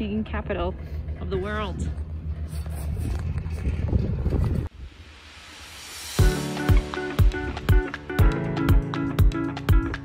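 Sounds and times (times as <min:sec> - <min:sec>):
wind buffeting microphone: 0:01.4 - 0:05.0.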